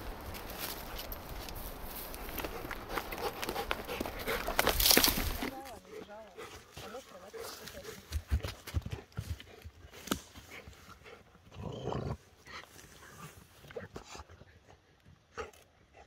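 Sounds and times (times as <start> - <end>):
branch dragging through grass: 0.0 - 5.8
dry wood knocking and snapping: 0.1 - 5.8.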